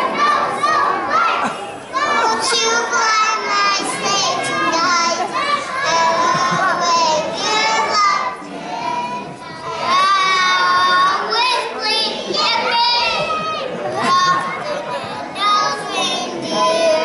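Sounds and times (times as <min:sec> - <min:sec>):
children singing: 0:00.0 - 0:17.0.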